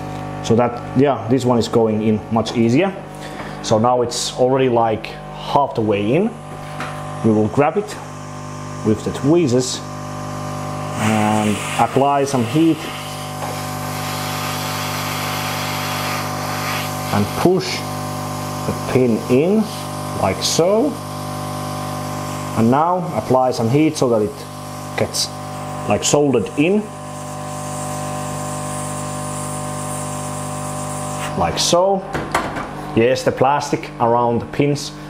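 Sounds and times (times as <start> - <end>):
blower humming: 0.0 - 35.0
hot air soldering station hissing: 2.8 - 32.0
hiss of hot air from nozzle: 11.0 - 17.4, 27.1 - 31.3.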